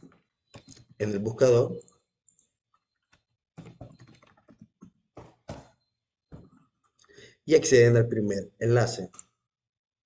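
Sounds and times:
typing on computer keyboard: 3.6 - 5.3.

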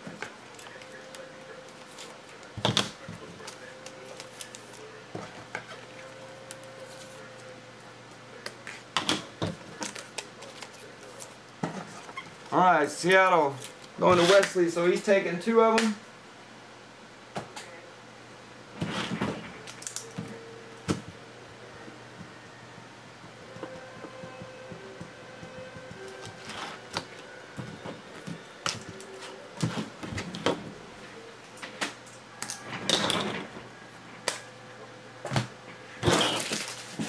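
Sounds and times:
low steady hum: 0.0 - 37.0
cards rustling: 0.2 - 4.9, 9.5 - 14.6, 36.1 - 37.0.

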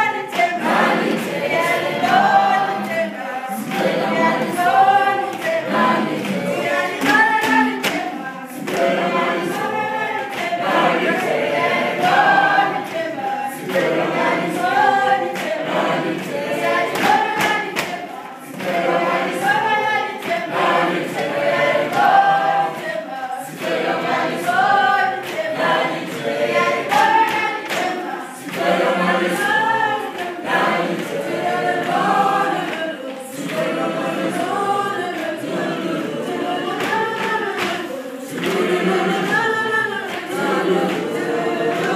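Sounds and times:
children singing unaccompanied: 0.0 - 41.9.

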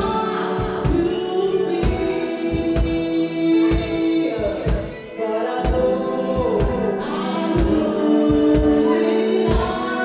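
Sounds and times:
drums: 0.0 - 10.0
electric guitar: 0.0 - 10.0
kick drum beats: 0.0 - 10.0
woman singing into a microphone: 0.0 - 10.0.

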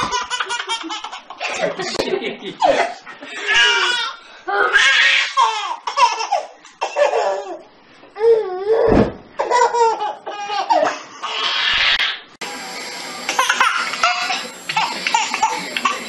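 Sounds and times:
baby laughing: 0.0 - 8.4, 9.4 - 12.2, 13.3 - 16.0
sharp thump: 8.9 - 9.4.

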